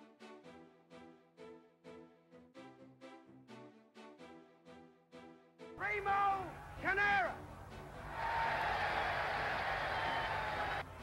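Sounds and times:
crowd cheering: 7.9s - 11.0s.

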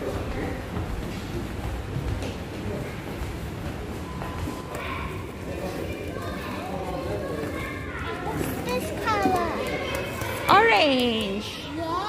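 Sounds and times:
children playing and chattering: 2.4s - 12.0s.

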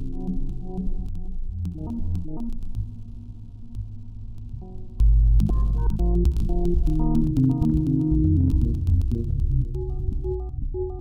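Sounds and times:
low synth bass tone: 5.0s - 11.0s.

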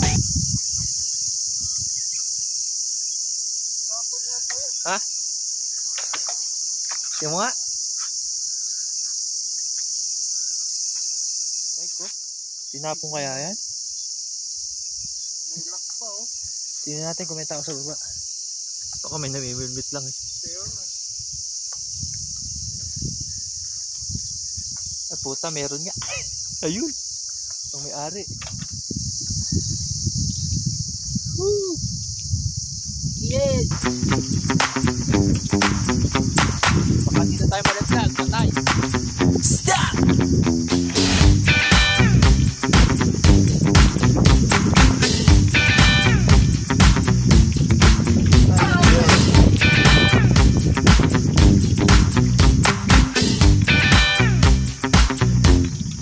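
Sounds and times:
insects droning: 0.0s - 56.0s.

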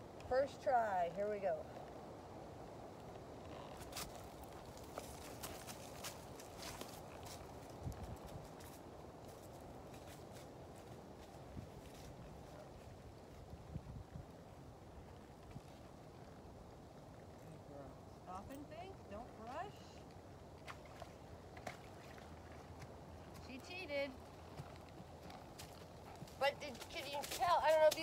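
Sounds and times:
horse hooves in mud: 0.1s - 17.4s, 18.3s - 28.0s
person speaking: 26.4s - 28.0s.

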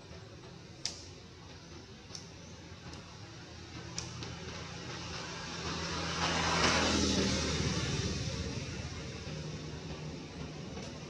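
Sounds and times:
motor vehicle engine hum: 0.0s - 11.0s.

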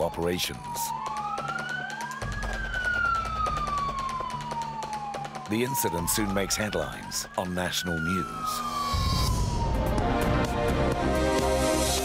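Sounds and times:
police siren wailing: 0.0s - 12.0s.

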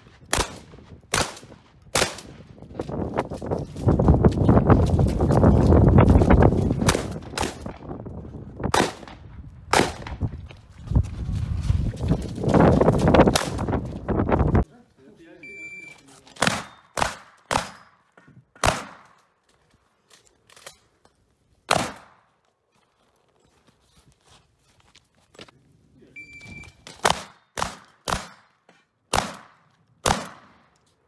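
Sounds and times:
shotgun shots: 0.3s - 2.4s, 6.8s - 7.8s, 8.7s - 10.2s, 16.4s - 17.9s, 18.6s - 19.2s, 21.7s - 22.2s, 26.8s - 28.5s, 29.1s - 30.7s
shot timer beep: 15.4s - 16.0s, 26.2s - 26.8s.

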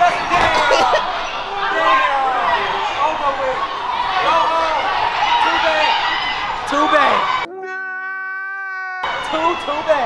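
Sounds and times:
crowd shouting: 0.0s - 7.8s, 8.9s - 10.0s.

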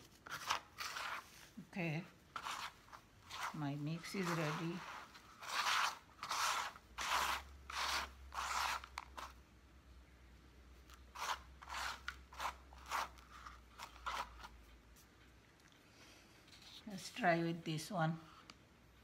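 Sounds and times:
hands sweeping potting mix on tray: 0.0s - 9.4s.

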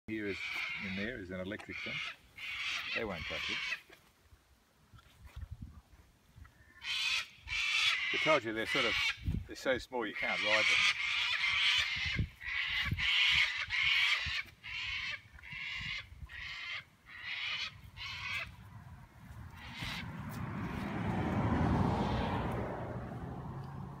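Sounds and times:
bird calling: 0.1s - 3.9s, 10.0s - 20.4s.

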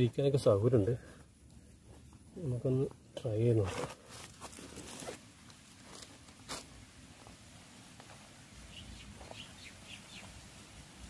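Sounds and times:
person rustling and scuffing: 1.2s - 8.4s.

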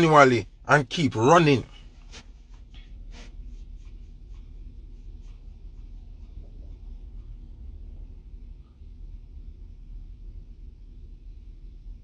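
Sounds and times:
low rumble in car cabin: 0.0s - 12.0s
scratchy rustles on microphone: 1.7s - 6.8s.

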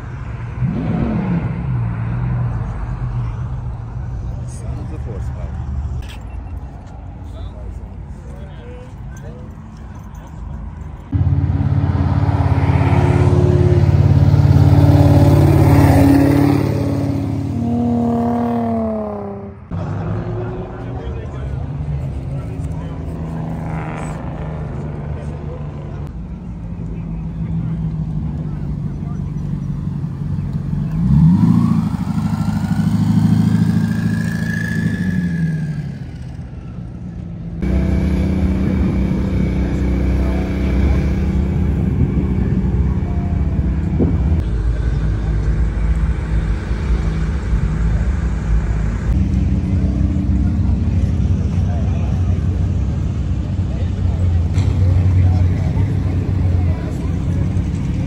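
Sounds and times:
car engines revving past: 0.0s - 5.3s, 11.1s - 58.0s.

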